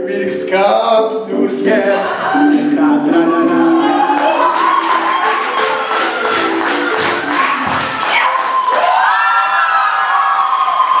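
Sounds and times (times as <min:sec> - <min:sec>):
long held voices: 0:00.0 - 0:04.8
song backing music with beat: 0:00.0 - 0:08.4
people cheering: 0:03.4 - 0:11.0.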